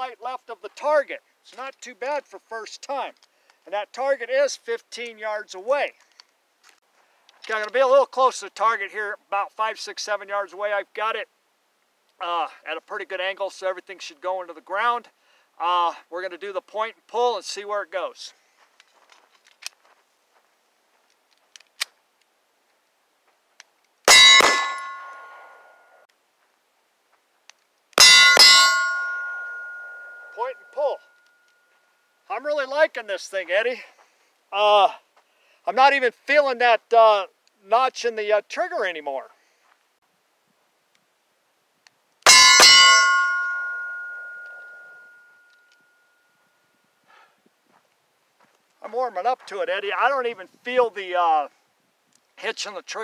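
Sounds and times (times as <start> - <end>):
faint clicks and scuffs: 5.9 - 7.8, 18.3 - 24.0
pistol shots: 24.1 - 25.3
metallic ringing: 24.1 - 26.0, 28.0 - 32.3, 42.3 - 46.8.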